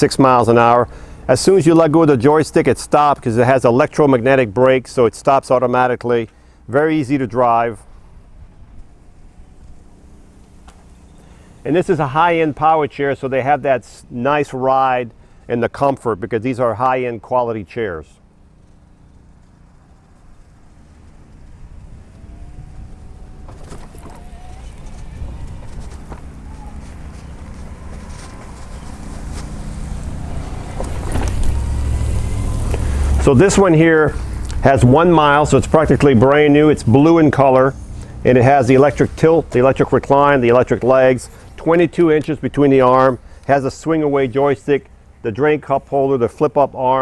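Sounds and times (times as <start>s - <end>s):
electric motor hum: 7.8s - 12.8s, 18.2s - 36.9s
wind rumble on microphone: 21.0s - 29.3s.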